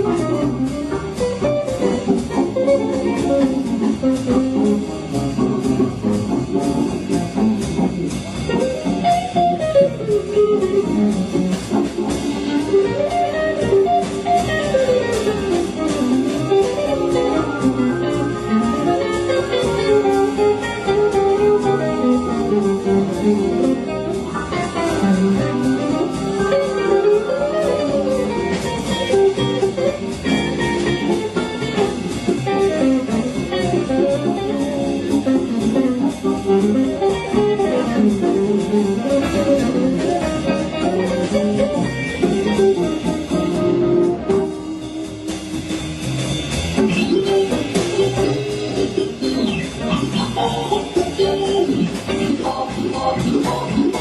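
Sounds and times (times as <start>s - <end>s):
drums: 0.0s - 54.0s
organ: 0.0s - 54.0s
upright bass: 0.0s - 54.0s
electric guitar solo: 16.5s - 29.9s.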